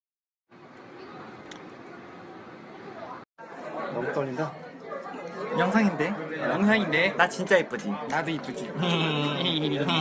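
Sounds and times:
faint background chatter: 0.6s - 10.0s.

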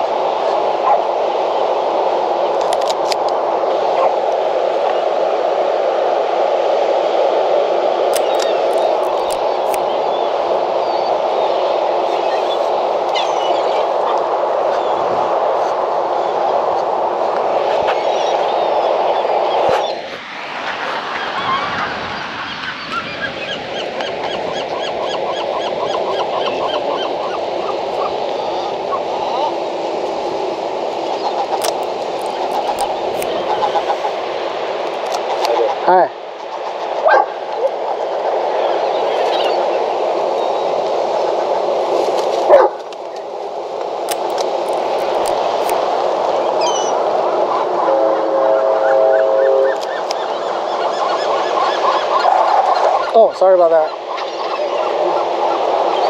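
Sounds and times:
camera shutter clicks: 8.2s - 9.5s
voices: 31.1s - 34.3s.

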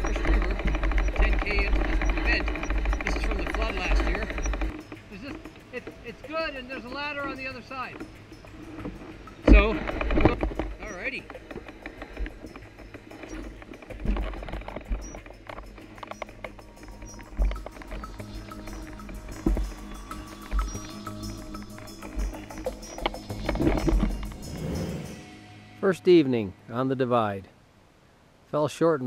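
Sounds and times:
background music: 0.0s - 27.5s.

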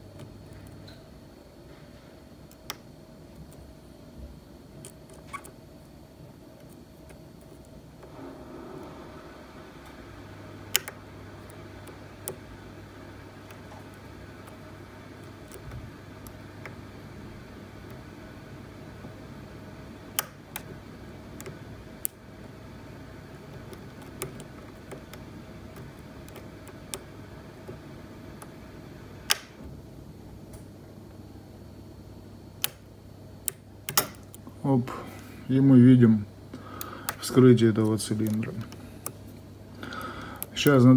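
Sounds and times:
low steady hum: 0.0s - 40.9s.

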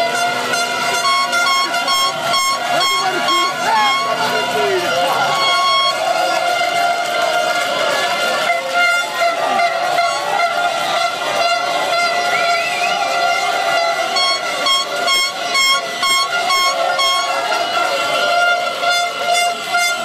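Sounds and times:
crowd celebrating: 0.0s - 20.0s
horn quick repeated blasts: 0.0s - 20.0s
horns honking: 0.0s - 20.0s.

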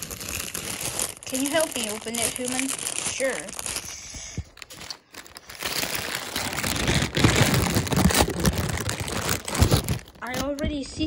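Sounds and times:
plastic mailer bag tearing: 0.0s - 10.6s.

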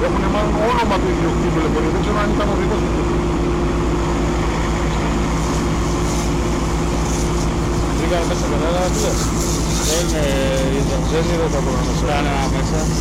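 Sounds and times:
heavy engine running: 0.0s - 13.0s.

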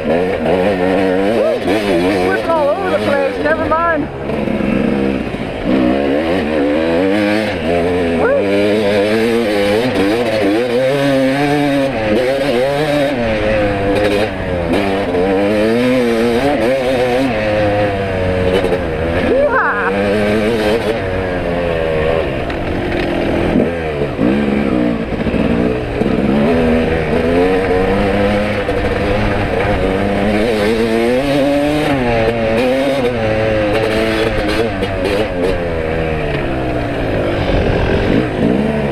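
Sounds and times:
dirt bike engine revving: 0.0s - 38.9s.

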